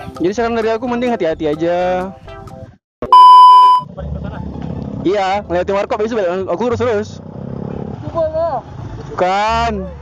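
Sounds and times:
motorcycle engines rumbling: 3.8s - 10.0s.

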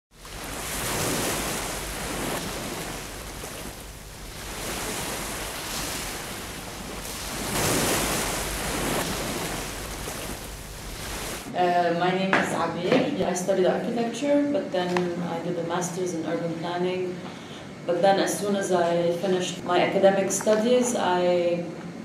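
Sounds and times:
sea waves washing: 0.1s - 11.5s.

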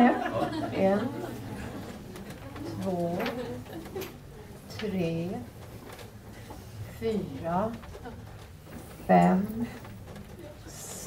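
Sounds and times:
chairs and clothing rustling: 0.0s - 11.0s
low murmur of group: 0.0s - 11.0s.

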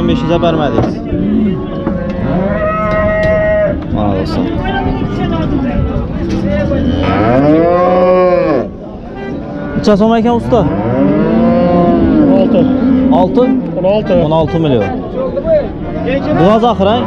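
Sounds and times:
cattle mooing: 0.0s - 3.8s, 6.6s - 14.2s, 16.3s - 17.0s.

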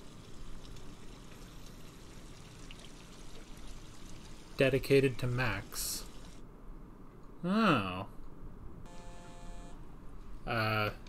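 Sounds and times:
phone ringing electronic tone: 8.9s - 9.8s.

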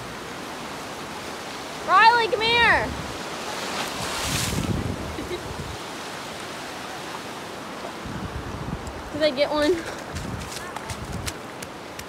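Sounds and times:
surf washing on beach: 0.0s - 12.0s
wind buffeting microphone: 2.1s - 6.2s, 7.9s - 12.0s.

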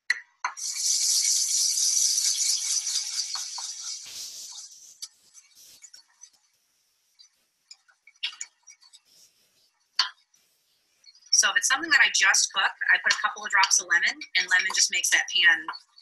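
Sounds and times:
brush scrubbing steel saucepan: 0.6s - 6.5s.

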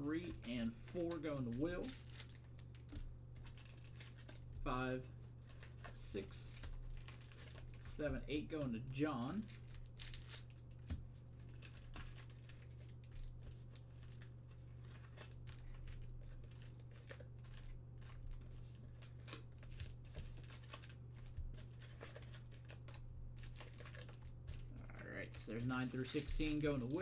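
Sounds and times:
foil packs crinkling: 0.0s - 27.0s
steady low hum: 0.0s - 27.0s.

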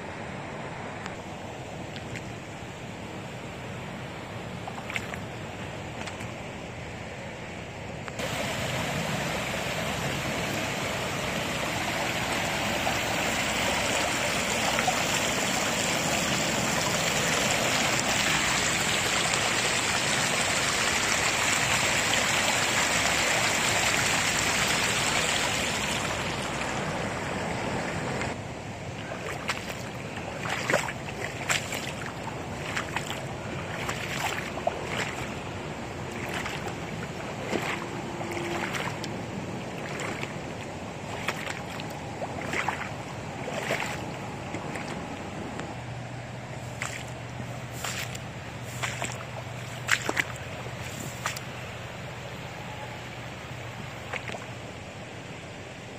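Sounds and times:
floodwater rushing: 0.0s - 6.9s, 8.0s - 55.9s.

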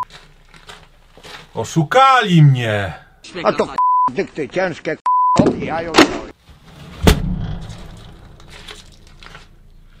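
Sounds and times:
heavy thud with low rumble: 6.9s - 8.4s.

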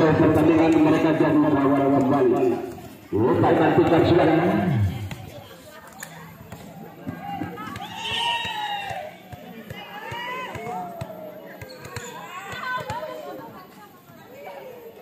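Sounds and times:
women calling and shouting: 4.8s - 15.0s
ball bouncing on hard court: 6.5s - 13.1s.

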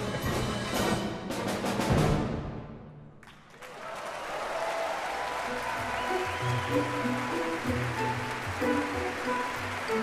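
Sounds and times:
audience applause: 3.2s - 10.0s.

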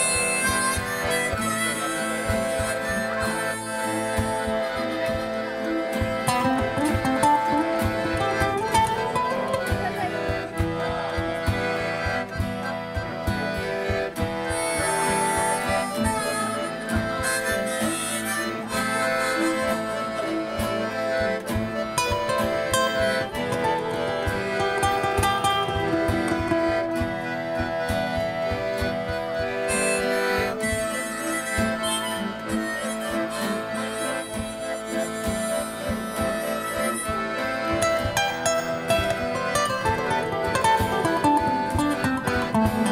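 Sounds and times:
accordion holding chords: 0.0s - 42.9s
harmonica playing lead: 0.0s - 42.9s
strummed acoustic guitar: 0.0s - 42.9s.

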